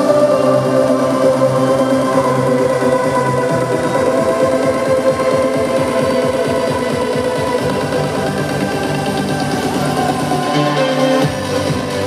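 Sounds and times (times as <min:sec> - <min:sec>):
trance music over sound system: 0:00.0 - 0:12.0.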